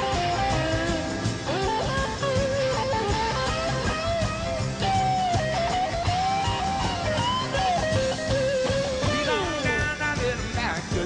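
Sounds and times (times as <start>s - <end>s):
electric guitar lead line: 0.0s - 11.0s
rock band playing: 0.0s - 11.0s.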